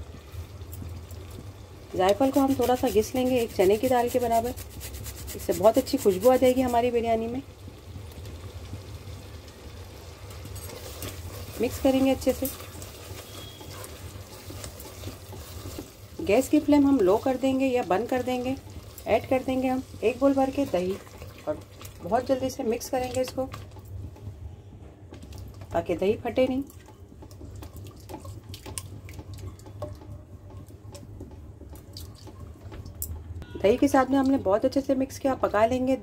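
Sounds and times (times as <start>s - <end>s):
spatula stirring thick sauce: 2.1s - 6.9s, 10.7s - 22.0s, 26.6s - 32.7s.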